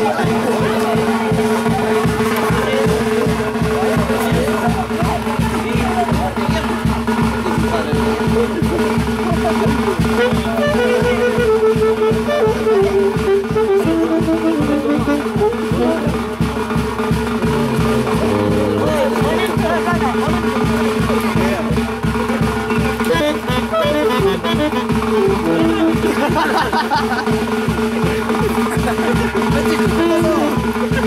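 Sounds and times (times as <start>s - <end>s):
bass drum beat: 0.0s - 31.0s
saxophone melody: 10.1s - 20.6s, 23.0s - 26.6s, 29.8s - 30.9s
electric bass: 17.0s - 20.3s.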